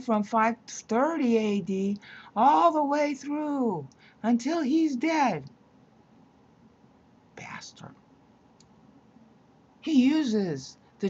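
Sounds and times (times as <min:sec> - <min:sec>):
woman speaking: 0:00.0 - 0:05.5, 0:07.4 - 0:08.0, 0:09.8 - 0:10.8.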